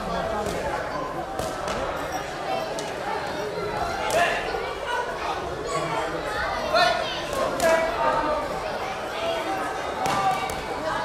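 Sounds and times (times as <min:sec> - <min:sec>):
voices chattering: 0:00.0 - 0:11.0.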